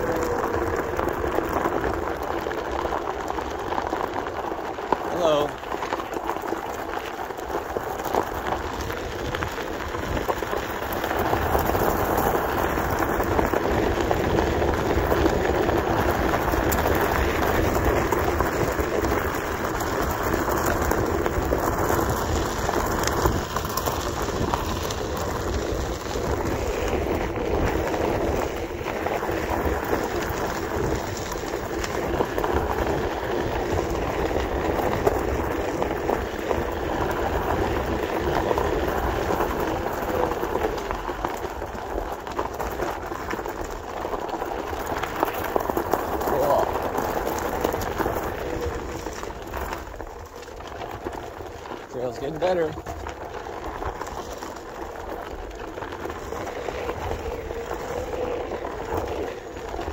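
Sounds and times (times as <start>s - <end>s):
tyre rolling over gravel: 0.0s - 59.9s.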